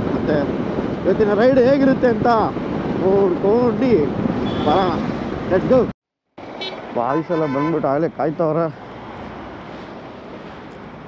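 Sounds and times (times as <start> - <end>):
outdoor background noise: 0.0 - 11.0
person talking: 6.9 - 8.8.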